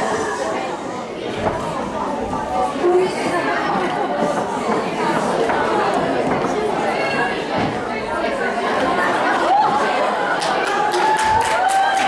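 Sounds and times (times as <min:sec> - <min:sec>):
crowd chattering in a hall: 0:00.0 - 0:12.0.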